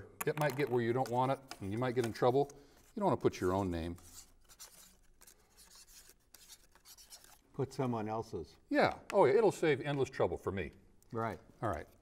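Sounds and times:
marker pen scratching on wood: 3.8 - 7.4.

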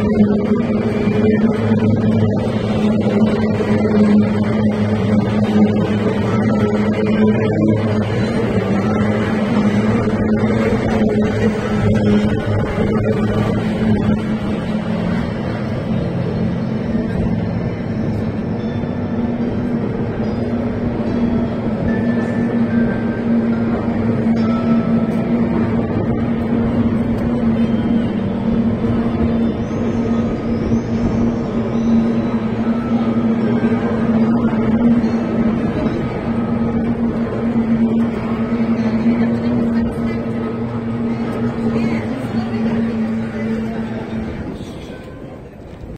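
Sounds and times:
outboard engines droning: 0.0 - 45.9.

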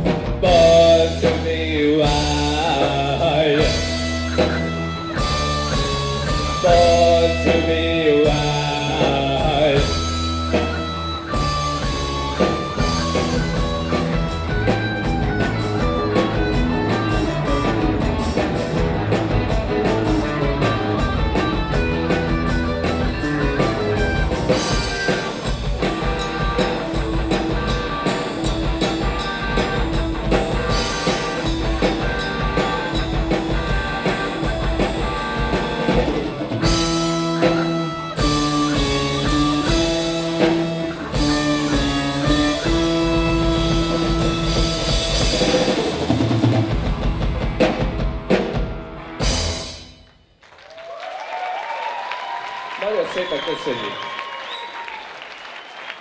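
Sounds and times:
electric guitars: 0.0 - 49.9
bass guitar: 0.0 - 50.0
drum kit: 0.0 - 50.2.

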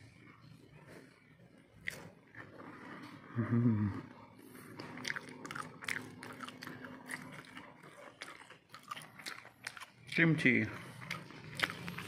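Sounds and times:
person chewing crunchy food: 0.1 - 12.0
low vocal sound: 3.3 - 4.2.

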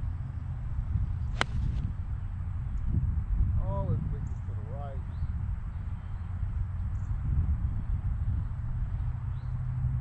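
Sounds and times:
steady low rumble: 0.0 - 9.3
golf club striking ball: 1.3 - 1.9.

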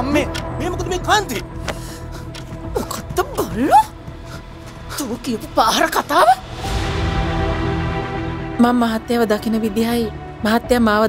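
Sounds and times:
background music with held tone: 0.0 - 11.0.

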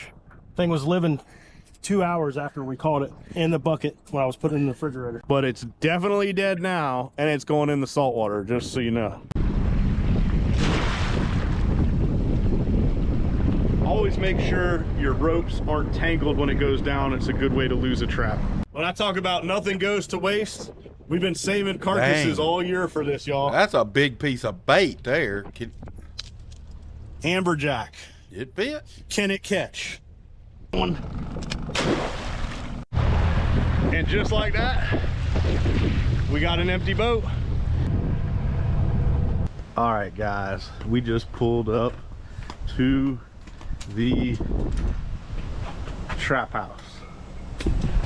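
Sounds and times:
wind buffeting microphone: 8.6 - 18.7, 19.3 - 22.2, 23.6 - 27.2, 33.0 - 39.5, 40.8 - 46.1, 47.4 - 48.0
crab trap splashing into water: 10.5 - 11.8, 31.7 - 32.8.

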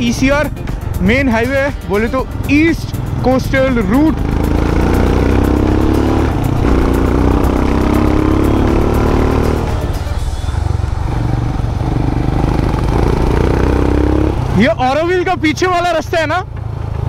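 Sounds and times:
motorcycle engine accelerating: 0.0 - 17.0
road rumble: 0.0 - 17.0
wind: 0.0 - 17.0.

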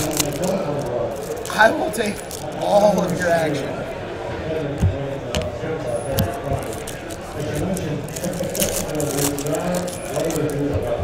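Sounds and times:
handling trading cards and foil pack: 0.0 - 3.7, 6.1 - 11.0
faint background voices: 0.0 - 11.0.

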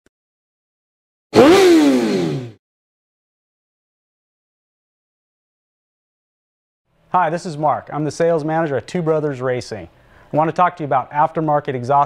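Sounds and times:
motorcycle engine revving: 1.4 - 2.6.

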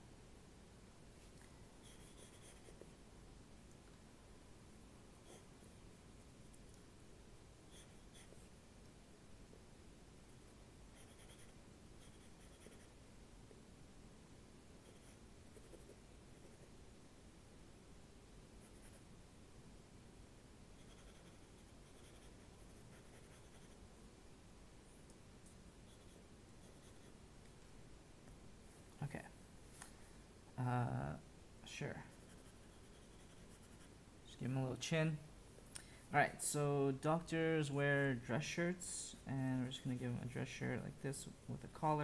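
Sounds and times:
low room hiss: 0.0 - 42.0
pencil scratching on paper: 1.8 - 2.9, 7.7 - 8.4, 10.2 - 13.0, 14.8 - 16.7, 20.8 - 23.8, 25.9 - 27.1, 32.1 - 34.0.

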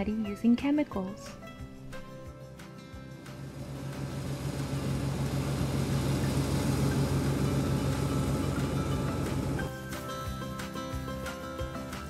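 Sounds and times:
combine harvester engine hum: 3.2 - 9.7.

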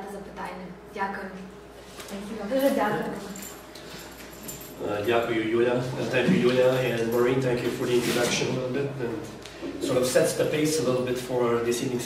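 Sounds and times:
woman speaking: 0.0 - 3.6
man speaking: 4.8 - 12.0.

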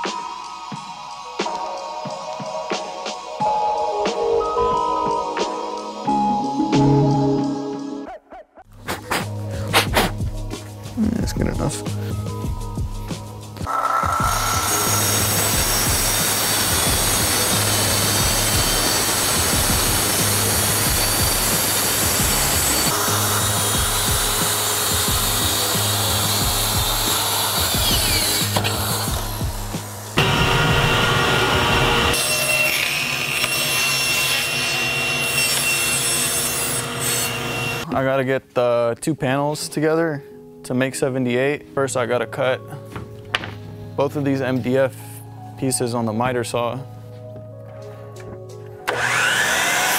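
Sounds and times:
circular saw cutting plywood: 13.6 - 37.8, 48.8 - 49.9
saw blade spinning down whine: 13.7 - 33.2, 48.9 - 49.9.

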